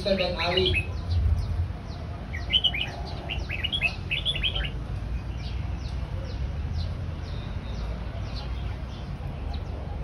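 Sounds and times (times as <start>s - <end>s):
songbirds chirping: 0.0s - 10.0s.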